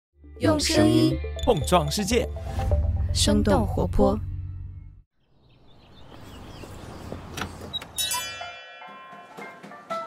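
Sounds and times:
jingle singing with bass: 0.3 - 5.0.

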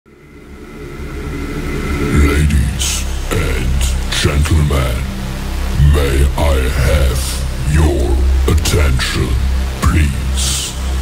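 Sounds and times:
low rumbling sound effect: 0.1 - 11.0.

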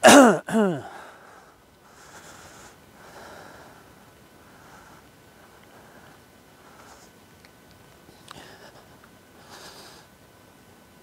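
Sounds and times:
man coughing: 0.0 - 1.0.

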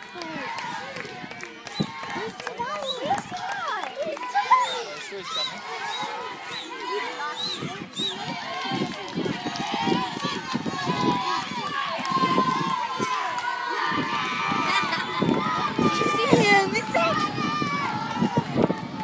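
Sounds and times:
spectators shouting: 0.0 - 19.0.

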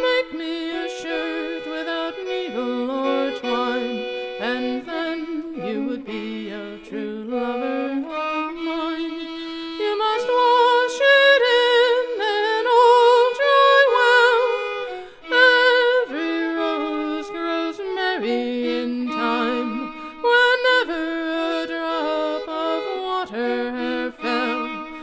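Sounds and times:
fiddle playing slow folk ballad: 0.0 - 25.0.

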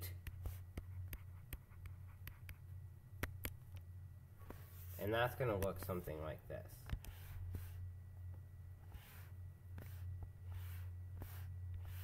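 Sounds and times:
steady low hum: 0.0 - 12.0
stylus ticking on pen tablet: 0.2 - 2.6.

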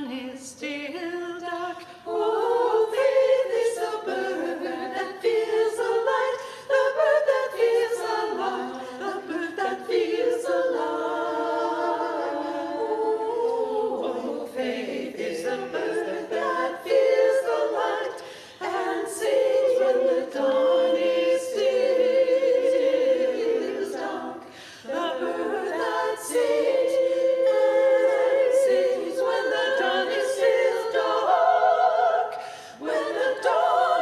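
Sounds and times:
choir singing unaccompanied: 0.0 - 34.0.

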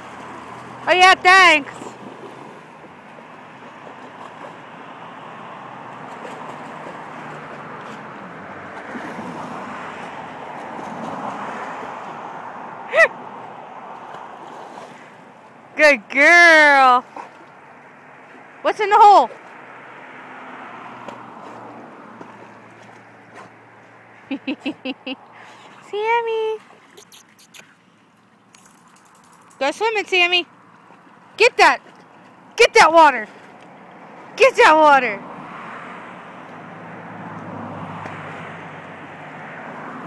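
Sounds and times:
churning water rushing: 0.0 - 40.0
dog paddling splashes: 0.0 - 40.0.

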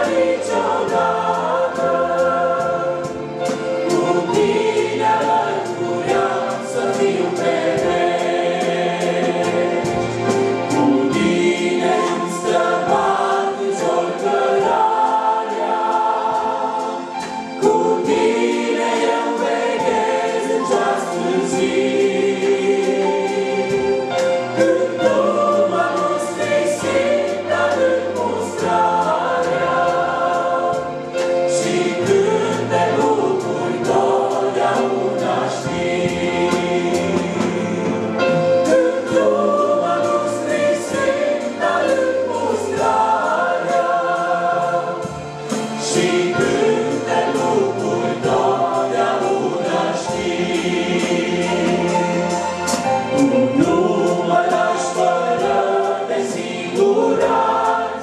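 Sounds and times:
congregation and choir singing a hymn: 0.0 - 58.0.

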